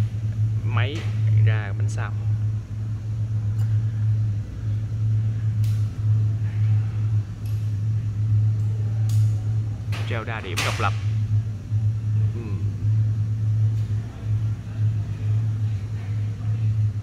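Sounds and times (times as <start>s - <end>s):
workshop machinery hum: 0.0s - 17.0s.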